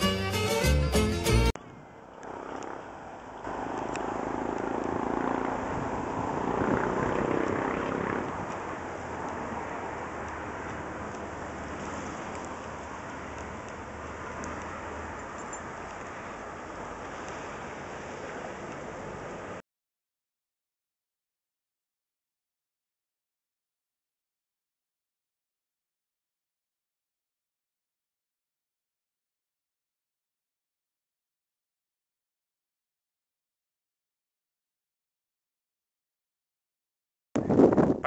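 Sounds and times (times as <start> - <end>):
outdoor background noise: 1.5 - 19.6.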